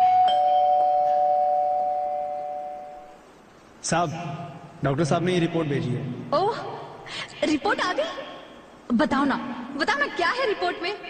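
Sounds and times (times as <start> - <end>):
two-note doorbell chime: 0.0 - 3.2.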